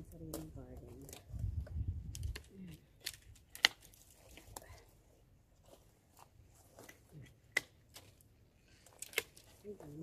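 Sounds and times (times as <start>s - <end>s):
loppers snipping dry branches: 0.0s - 4.7s, 5.7s - 10.0s.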